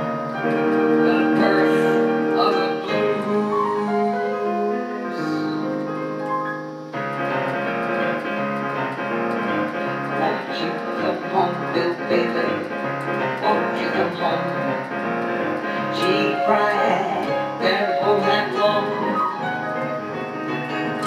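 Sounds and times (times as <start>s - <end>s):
electronic keyboard piano chords: 0.0s - 21.0s.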